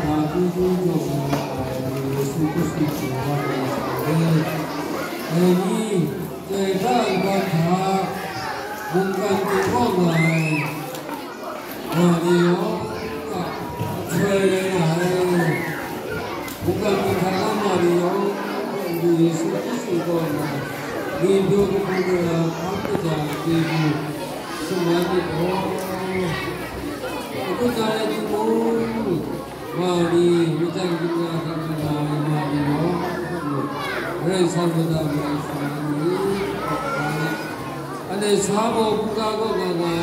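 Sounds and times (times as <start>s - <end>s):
children's voices: 0.0s - 40.0s.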